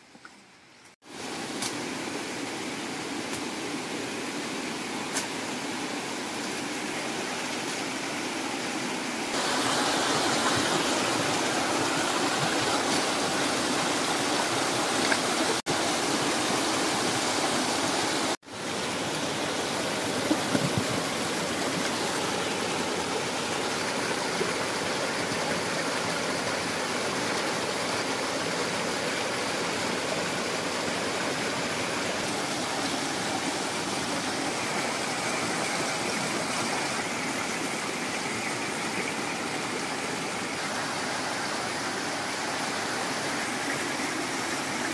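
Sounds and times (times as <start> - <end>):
stream rushing over rocks: 0.5 - 44.9.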